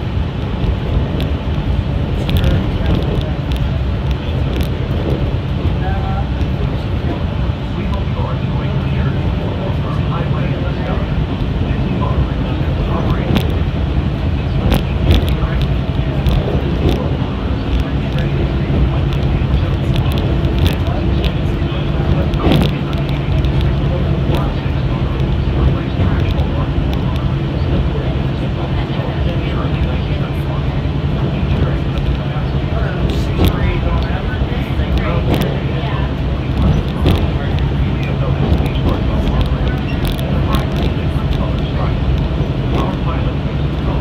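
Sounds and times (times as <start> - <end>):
monorail train rumble: 0.0 - 44.0.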